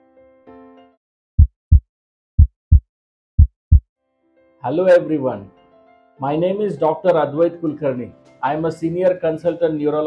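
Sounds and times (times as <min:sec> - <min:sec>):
heartbeat thumps: 0:01.4 - 0:01.8, 0:02.4 - 0:02.8, 0:03.4 - 0:03.8.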